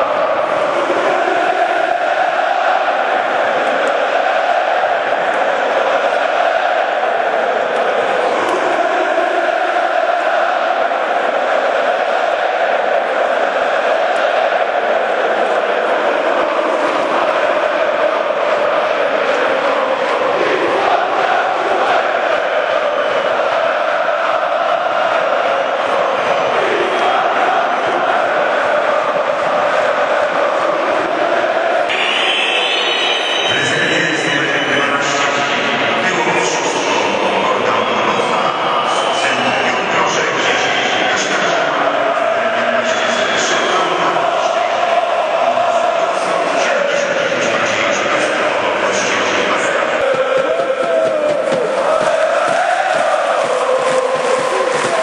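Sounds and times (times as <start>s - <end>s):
stadium crowd chanting: 0.0s - 55.0s.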